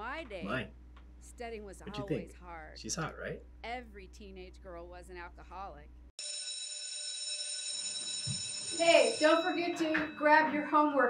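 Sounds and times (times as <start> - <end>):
school bell ringing: 6.2 - 11.0.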